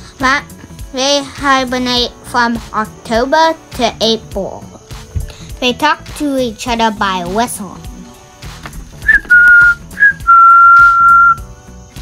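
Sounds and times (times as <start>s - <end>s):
faint background music: 0.0s - 12.0s
whistling single-pitch notes: 9.0s - 11.5s.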